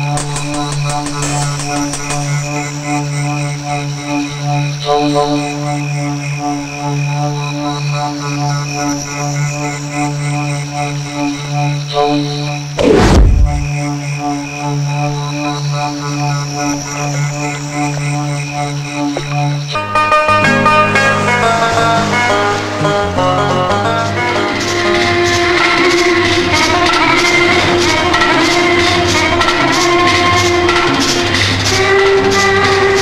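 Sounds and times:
loud falling whoosh: 12.8 - 13.8
repeating pulsing pattern: 12.8 - 13.9
low steady drone: 12.8 - 14.1.

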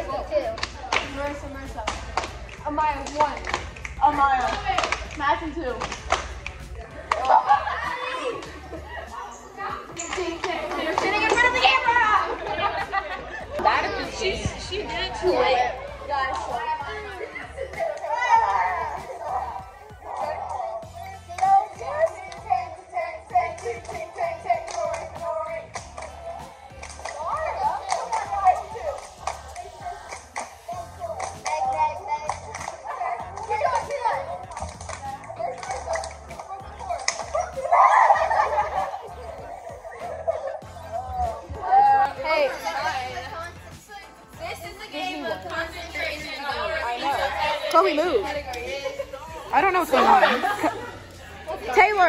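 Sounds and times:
girls talking over one another: 0.0 - 52.0.

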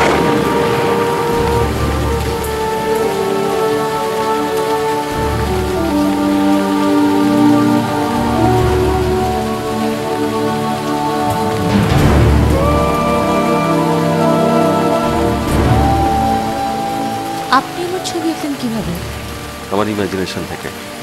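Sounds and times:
soft background music: 0.0 - 21.0
steady rain falling: 0.0 - 21.0.

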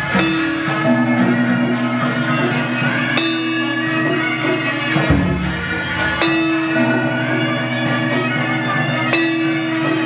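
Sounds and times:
bell ringing: 0.0 - 10.0
reed wind instrument: 0.0 - 10.0.

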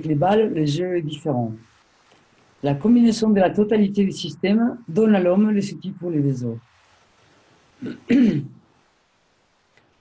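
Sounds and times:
man clearing his throat: 7.8 - 8.6.

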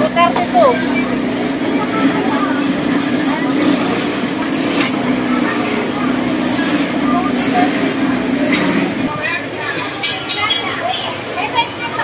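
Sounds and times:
crowd voices and chatter: 0.0 - 12.0.

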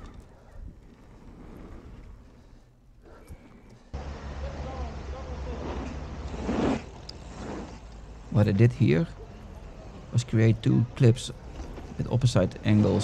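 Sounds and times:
bike tyres rolling over dirt: 0.0 - 3.2, 4.6 - 13.0.

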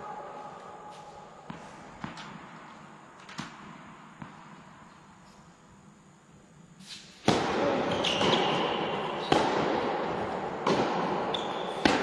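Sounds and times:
racket striking tennis ball: 7.2 - 12.0
shoes squeaking on court: 7.8 - 9.5, 11.2 - 12.0.

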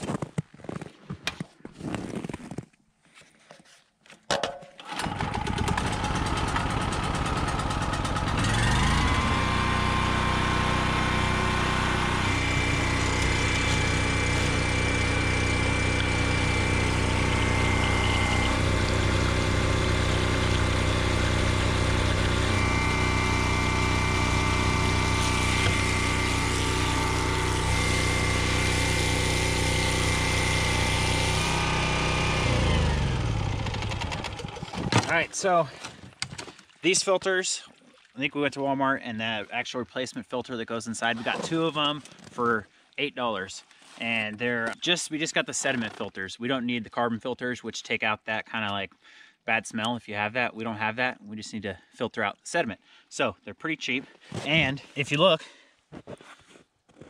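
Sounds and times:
generator engine running: 4.8 - 35.3
pump motor hum: 4.8 - 36.8
water gushing into plastic jug: 11.8 - 29.0, 33.7 - 38.3.

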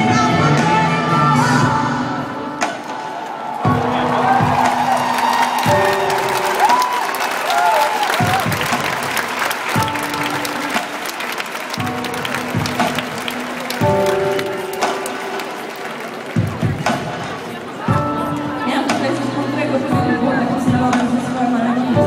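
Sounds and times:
live band low chords: 0.0 - 22.0
crowd clapping and cheering: 2.6 - 19.0.

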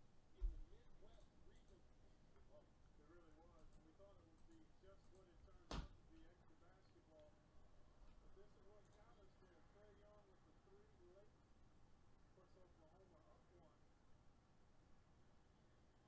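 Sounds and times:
faint distant voices: 0.0 - 14.1.

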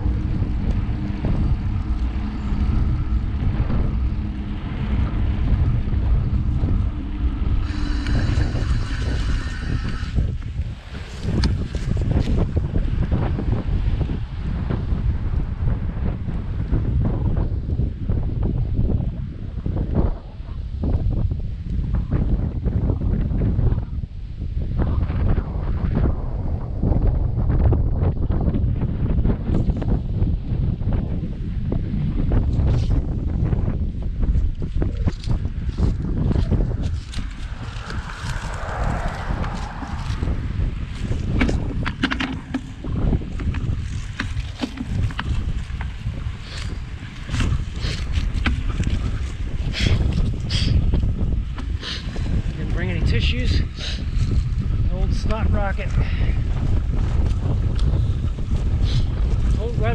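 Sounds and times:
higher rushing sound: 0.0 - 12.0, 35.8 - 41.9
wind buffeting microphone: 0.0 - 59.9.

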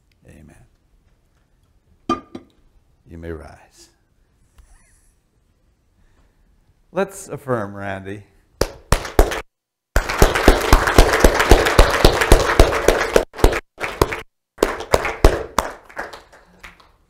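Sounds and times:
congregation applauding: 8.9 - 17.0.

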